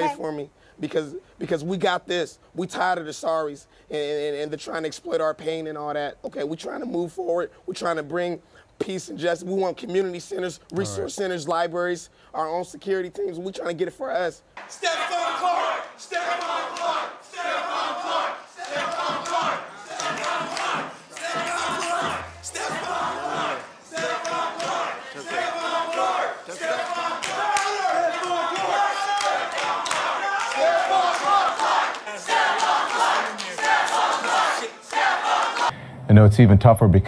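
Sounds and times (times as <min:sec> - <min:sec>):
crowd voices: 0:10.7 - 0:11.1, 0:14.7 - 0:35.8
man chanting: 0:10.7 - 0:11.2.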